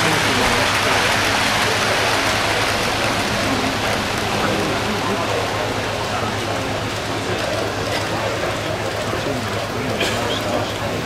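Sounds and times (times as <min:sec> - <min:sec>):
crowd hubbub: 0:00.0 - 0:11.0.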